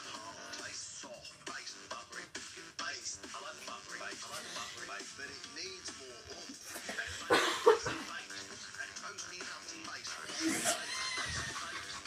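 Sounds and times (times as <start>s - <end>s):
music from television: 0.0s - 12.0s
person coughing: 6.9s - 8.2s.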